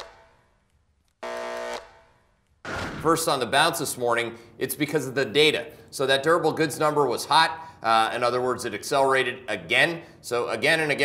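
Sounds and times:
neon sign electric buzz: 0:01.2 - 0:02.3.

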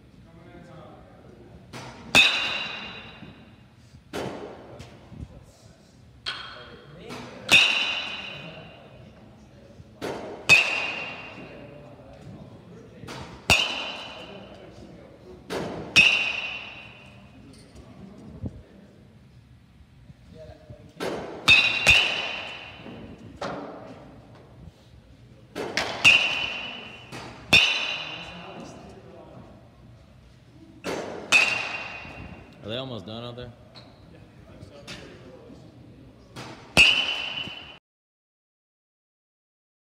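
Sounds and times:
metal bat pinging balls: 0:01.8 - 0:03.4, 0:07.4 - 0:08.8, 0:10.1 - 0:11.6, 0:13.1 - 0:14.5, 0:15.7 - 0:17.2, 0:21.4 - 0:23.2, 0:25.7 - 0:28.7, 0:30.8 - 0:32.6, 0:36.8 - 0:37.8.

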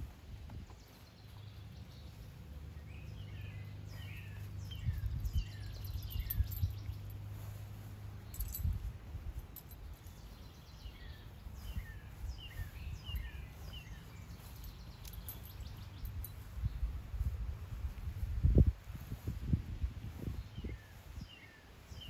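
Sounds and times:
small birds chirping: 0:00.0 - 0:22.0.

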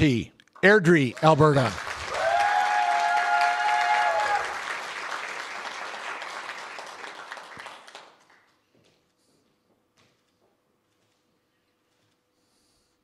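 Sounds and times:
audience applauding: 0:00.6 - 0:08.6
long held whoop: 0:02.1 - 0:04.6.

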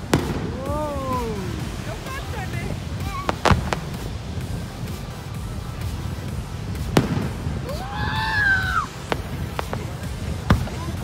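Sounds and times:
fireworks popping: 0:00.0 - 0:11.0
low steady rumble: 0:00.0 - 0:11.0.

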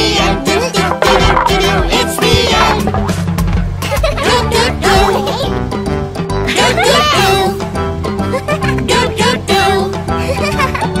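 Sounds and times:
bouncy children's song: 0:00.0 - 0:11.0
wavering high-pitched sound: 0:00.8 - 0:03.4.

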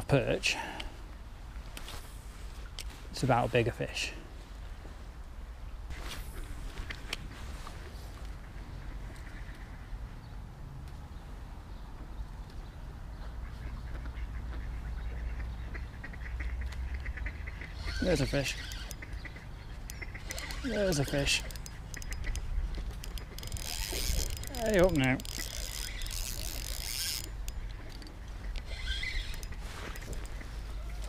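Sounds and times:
ducks quacking: 0:13.4 - 0:21.4.

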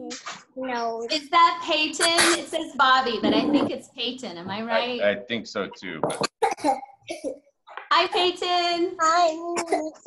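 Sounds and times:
person coughing: 0:02.0 - 0:02.6, 0:06.1 - 0:07.4.

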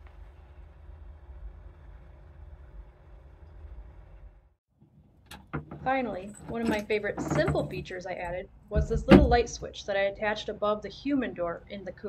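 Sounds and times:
low background rumble: 0:00.0 - 0:04.6, 0:05.8 - 0:12.0.

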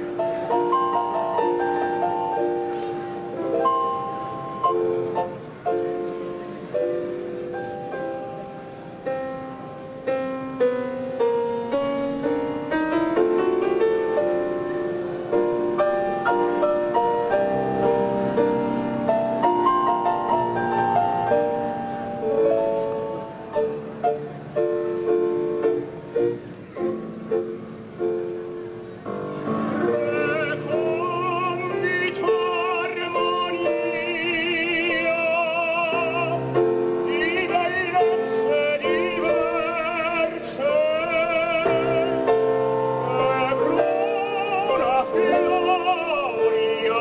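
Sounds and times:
grand piano playing: 0:00.0 - 0:47.0.

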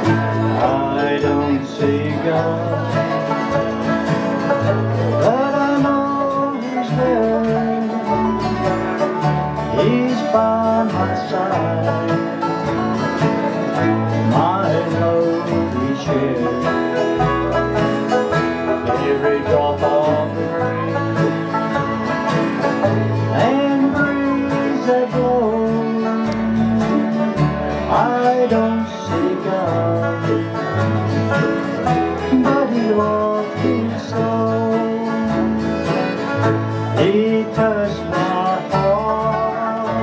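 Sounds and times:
acoustic guitar picking: 0:00.0 - 0:40.0
banjo picking: 0:00.0 - 0:40.0
bluegrass band playing: 0:00.0 - 0:40.0.

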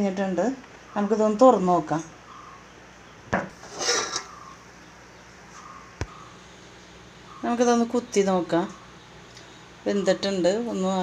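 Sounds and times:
metal lid scraping off pot: 0:03.5 - 0:04.3.

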